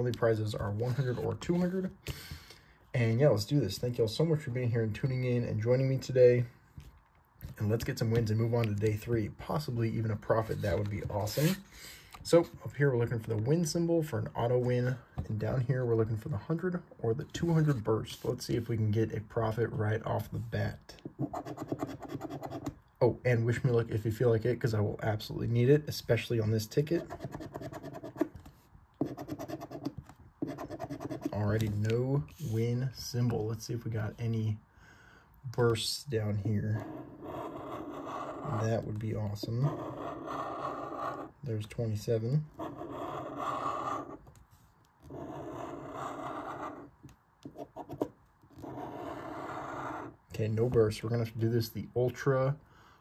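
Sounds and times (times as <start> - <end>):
lottery ticket being scratched: 21.2 - 22.7, 27.0 - 28.4, 29.0 - 32.6.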